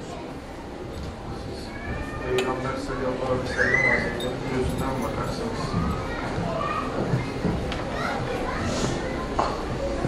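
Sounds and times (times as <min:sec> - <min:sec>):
people laughing and talking: 0:00.3 - 0:10.0.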